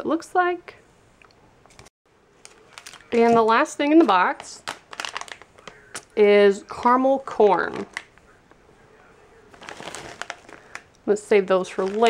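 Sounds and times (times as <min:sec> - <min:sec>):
plastic bag crinkling: 0:02.4 - 0:06.2, 0:07.6 - 0:08.2, 0:09.5 - 0:11.0, 0:11.6 - 0:12.0.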